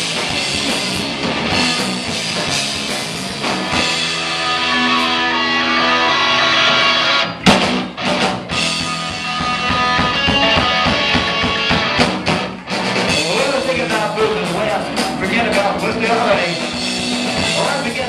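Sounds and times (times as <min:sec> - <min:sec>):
distorted electric guitar: 0:00.0 - 0:18.0
drums: 0:00.0 - 0:18.0
punk rock band playing fast: 0:00.0 - 0:18.0.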